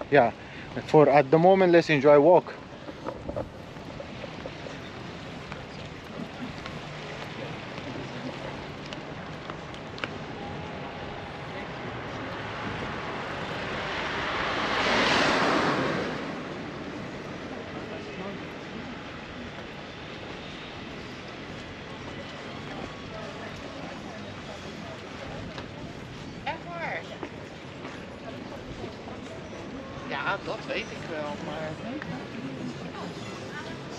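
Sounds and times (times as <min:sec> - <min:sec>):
street ambience: 0:00.0 - 0:33.9
faint voices: 0:01.8 - 0:14.7, 0:15.5 - 0:33.9
car passing by: 0:10.0 - 0:18.5.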